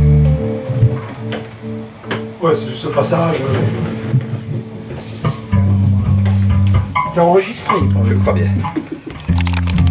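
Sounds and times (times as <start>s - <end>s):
electric bass guitar low note: 0.0s - 1.9s, 5.3s - 7.2s
plucked guitar notes: 0.0s - 9.9s.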